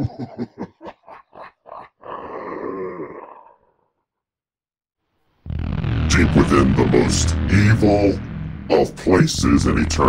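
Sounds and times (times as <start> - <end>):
moaning voice: 1.8 - 3.9.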